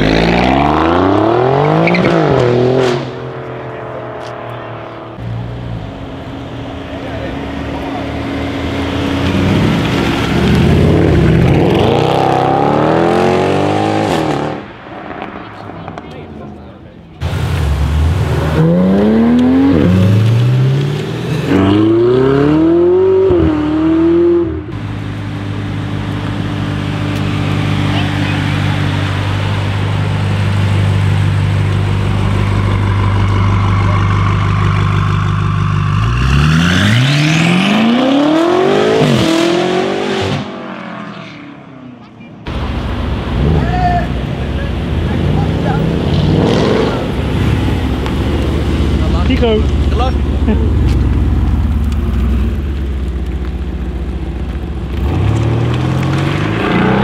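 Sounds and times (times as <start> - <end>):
car engine accelerating hard: 0.0 - 16.0, 17.2 - 41.1, 42.5 - 57.0
low engine note: 24.5 - 36.1.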